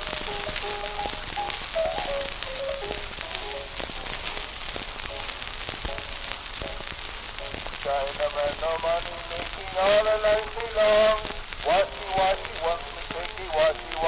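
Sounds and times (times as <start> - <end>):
old gramophone melody: 0.0 - 14.0
record surface crackle and hiss: 0.0 - 14.0.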